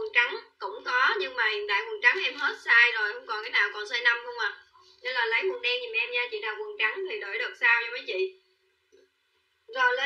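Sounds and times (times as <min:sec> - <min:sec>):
woman speaking: 0:00.0 - 0:08.5, 0:09.7 - 0:10.0.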